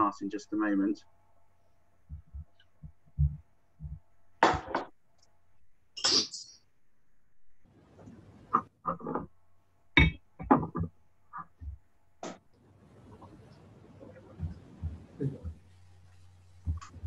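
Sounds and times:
faint steady hum: 0.0 - 17.0
soft low thumps: 2.1 - 4.1, 14.2 - 17.0.

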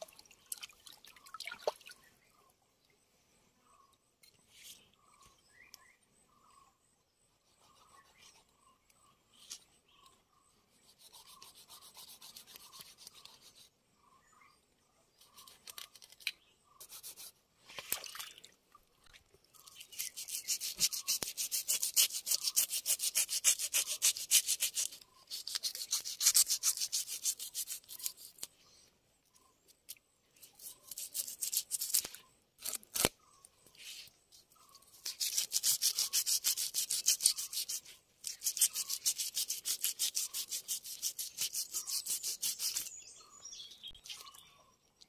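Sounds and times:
knife scraping fish scales: 10.8 - 13.7, 19.9 - 28.5, 30.4 - 33.1, 35.0 - 43.0.

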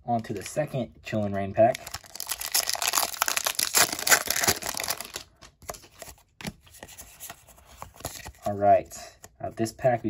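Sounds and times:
foil wrapper tearing and crinkling: 1.7 - 5.2
cards rustling and tapping: 1.7 - 9.4.

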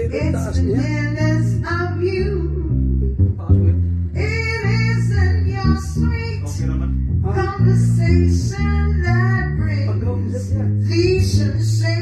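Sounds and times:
woman singing jazz ballad: 0.0 - 3.1, 4.1 - 6.6, 7.2 - 10.2, 10.8 - 12.0
bass playing low notes: 0.0 - 12.0.

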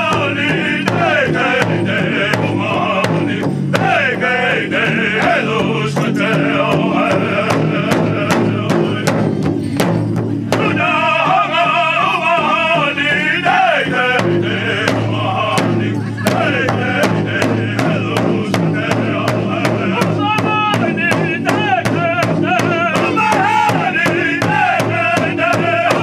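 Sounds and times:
men singing together: 0.0 - 9.4, 10.5 - 26.0
large hide drum beating: 0.0 - 26.0.

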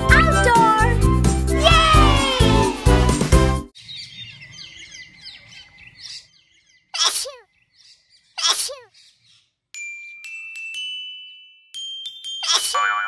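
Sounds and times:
children's song singing: 0.0 - 3.4
cartoon birdsong chirps: 3.8 - 9.6, 12.4 - 13.0.

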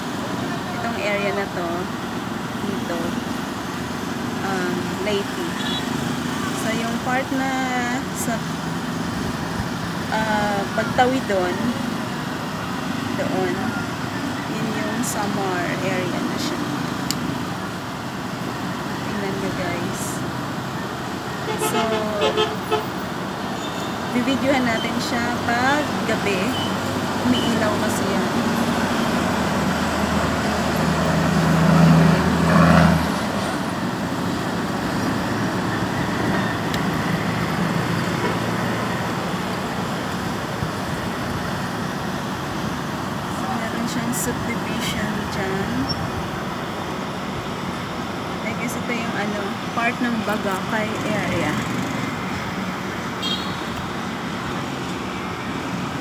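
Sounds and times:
traffic rumble: 0.0 - 56.0.

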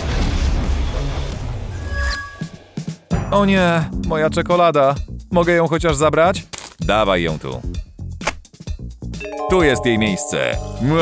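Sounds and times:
background music: 3.0 - 11.0
short bright chime: 9.2 - 10.8.

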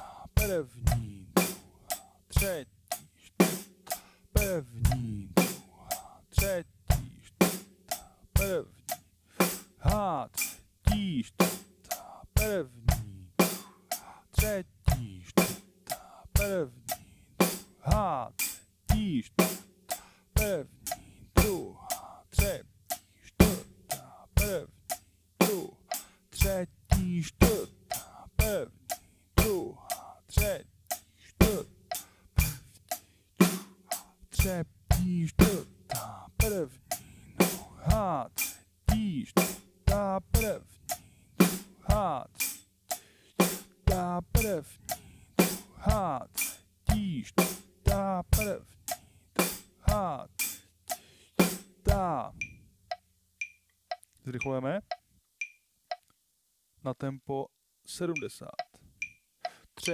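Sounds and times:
slow rock drum groove: 0.0 - 52.5
hi-hat eighth notes: 0.0 - 56.0, 58.1 - 59.9.

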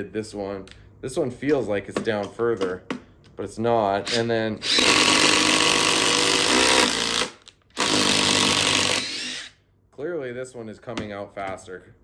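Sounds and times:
rising whine of impact driver: 6.3 - 9.6.

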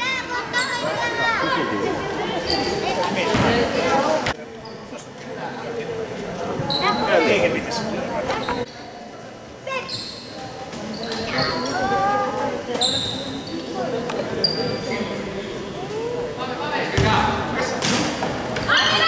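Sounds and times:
sneakers squeaking on hardwood: 12.7 - 13.8.

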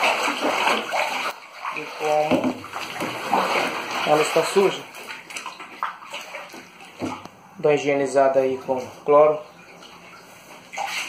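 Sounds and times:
water sloshing in a tank: 0.0 - 11.0.

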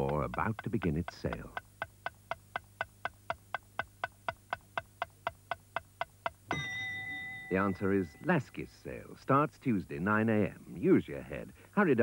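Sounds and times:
clock-like ticking: 0.0 - 6.4.

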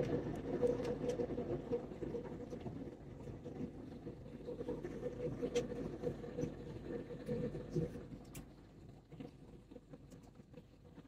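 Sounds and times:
faint steady hum: 0.0 - 11.0
jet engine and airflow rumble: 0.0 - 11.0.

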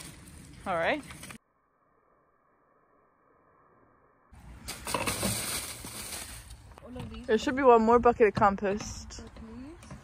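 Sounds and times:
leaves and scraps crunching: 0.0 - 1.4, 4.4 - 7.0.

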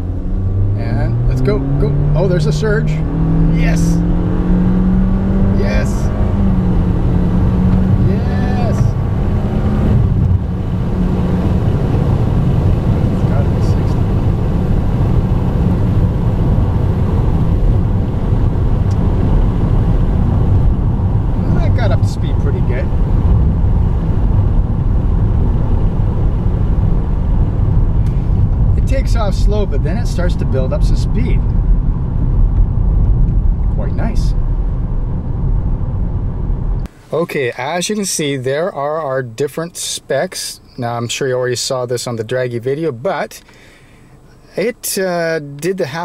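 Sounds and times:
car engine droning: 0.0 - 46.0
road and wind noise: 0.0 - 46.0.

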